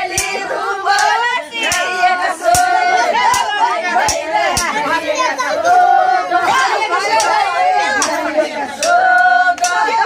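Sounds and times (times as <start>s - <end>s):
loud chatter and calls: 0.0s - 10.0s
women singing folk song: 0.0s - 10.0s
sharp hand claps: 0.1s - 1.9s, 8.8s - 10.0s.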